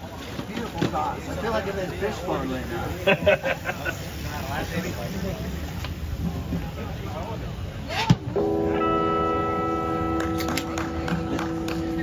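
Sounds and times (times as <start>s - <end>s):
faint chatter: 0.0s - 12.0s
amplified instrument chord: 8.4s - 12.0s.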